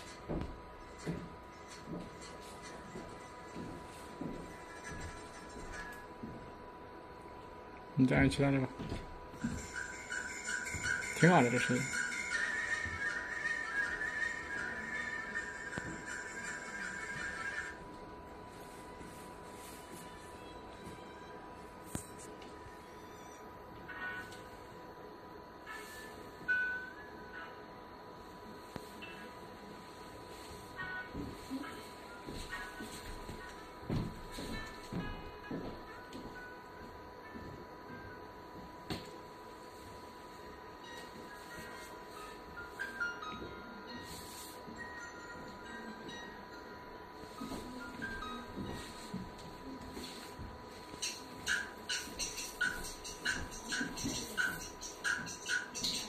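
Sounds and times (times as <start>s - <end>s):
steady high hum: 0.0s - 56.0s
thin steady whine: 0.0s - 56.0s.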